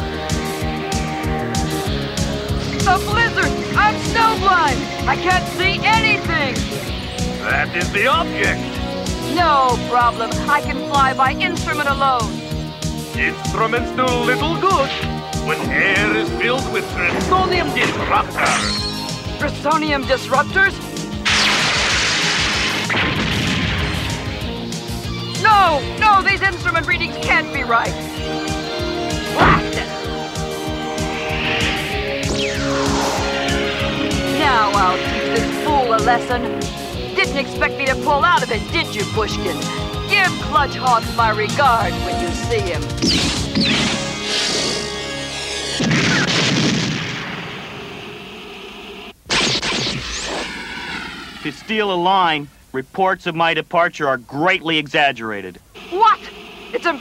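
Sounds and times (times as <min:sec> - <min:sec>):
background score: 0:00.0 - 0:23.1, 0:24.1 - 0:43.0
blizzard rushing hiss: 0:15.0 - 0:19.4, 0:29.6 - 0:37.2
cartoon explosions: 0:15.4 - 0:19.4, 0:21.2 - 0:24.5, 0:29.2 - 0:29.9, 0:30.9 - 0:37.0, 0:43.0 - 0:44.9, 0:45.7 - 0:48.7, 0:49.3 - 0:51.8.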